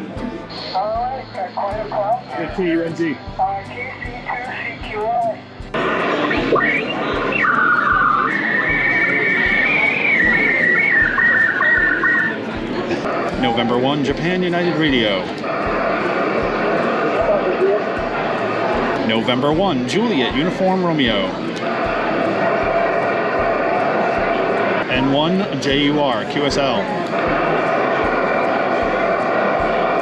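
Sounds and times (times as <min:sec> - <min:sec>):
radio static hiss: 0:05.8 - 0:12.4.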